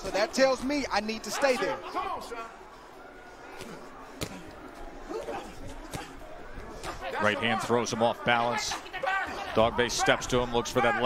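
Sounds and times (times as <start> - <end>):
quiet arena hum: 0.0 - 11.0.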